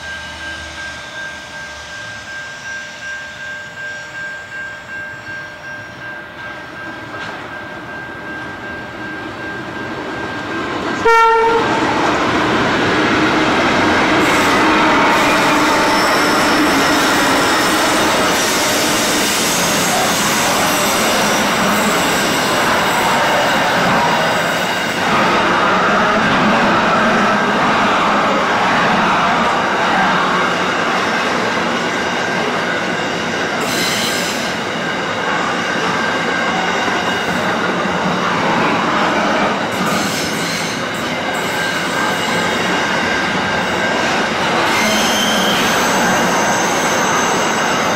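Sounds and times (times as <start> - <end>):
train wheels rumbling on rails: 0.0 - 47.9
locomotive engine: 8.2 - 32.6
faint high wheel squeal: 14.2 - 24.4, 39.9 - 47.9.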